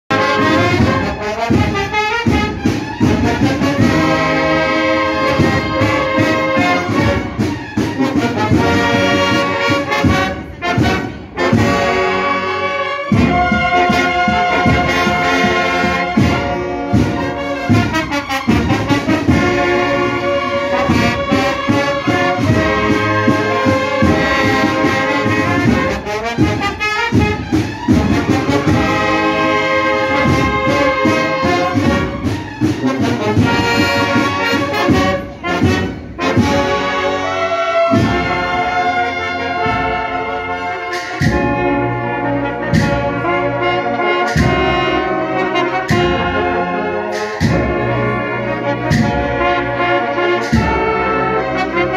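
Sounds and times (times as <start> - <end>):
drum strokes: 0.1 - 12.5, 13.1 - 37.2, 37.8 - 51.9
cornets playing chords: 0.1 - 51.9.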